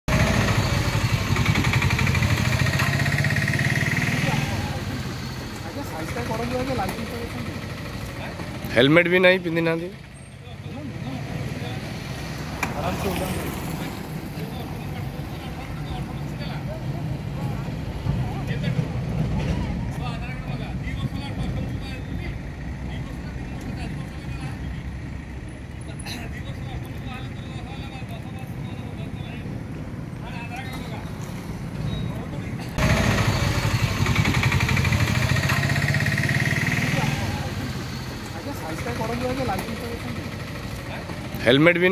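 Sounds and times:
vehicle noise: 0:00.0 - 0:41.9
people talking: 0:36.7 - 0:41.9.

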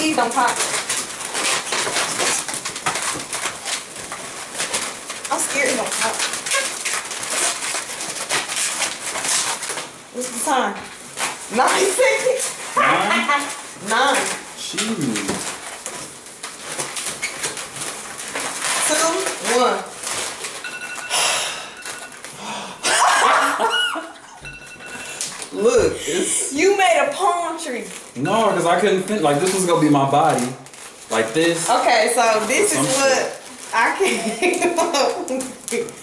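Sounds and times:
balloons squeaking and rubbing: 0:00.0 - 0:36.0
people laughing hard: 0:22.8 - 0:24.2.

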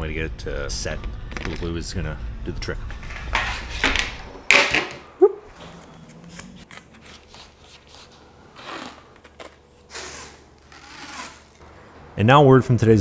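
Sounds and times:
tape peeling off roll: 0:06.2 - 0:11.6.

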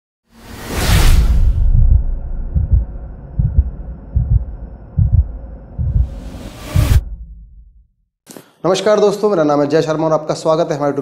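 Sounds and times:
loud whoosh: 0:00.3 - 0:07.9
low drone: 0:00.6 - 0:07.9
deep heartbeat-like thumps: 0:01.2 - 0:07.9.

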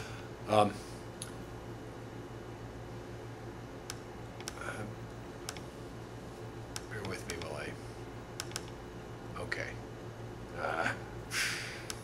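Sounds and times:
steady low hum: 0:00.0 - 0:12.0
computer keyboard and mouse clicks: 0:03.9 - 0:04.6, 0:05.4 - 0:05.7, 0:06.8 - 0:07.6, 0:08.4 - 0:08.8.

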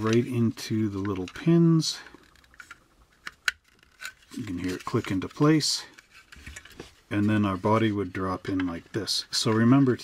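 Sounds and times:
plastic parts clicking together: 0:00.9 - 0:06.9.

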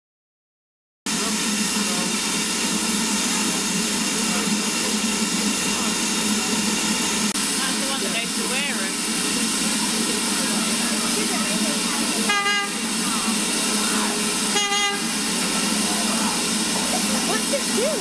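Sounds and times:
steam hissing from locomotive: 0:01.1 - 0:18.0.

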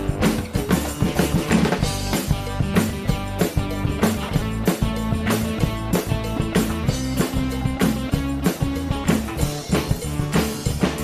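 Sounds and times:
background music with drum beat: 0:00.0 - 0:11.0.

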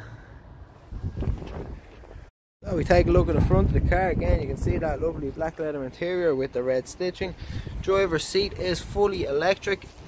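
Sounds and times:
wind rumble: 0:00.4 - 0:05.5
microphone handling noise: 0:00.9 - 0:02.3.

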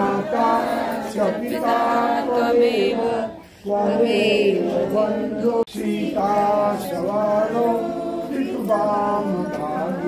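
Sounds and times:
voices singing a prayer: 0:00.0 - 0:10.0.

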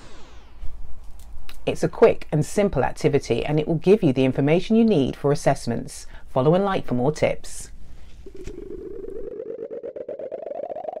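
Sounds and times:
rising pulsing synthesized tone: 0:00.0 - 0:01.1, 0:08.2 - 0:11.0.

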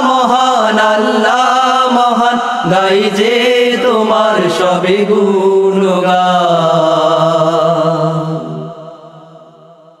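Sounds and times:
voices singing a long note: 0:00.0 - 0:10.0.

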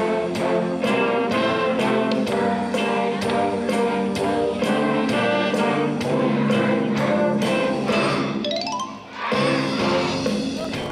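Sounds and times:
wind band playing: 0:00.0 - 0:10.9.

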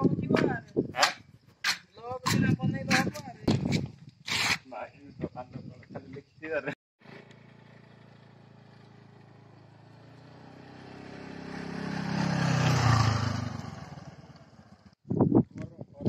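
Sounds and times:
motor scooter passing by: 0:07.0 - 0:15.0.

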